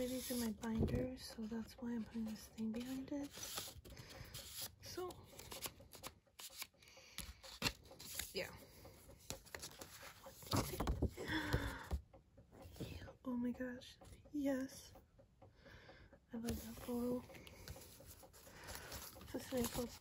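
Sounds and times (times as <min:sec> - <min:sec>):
paper and cards rustling: 0:00.0 - 0:08.6, 0:09.2 - 0:12.0, 0:16.4 - 0:20.0.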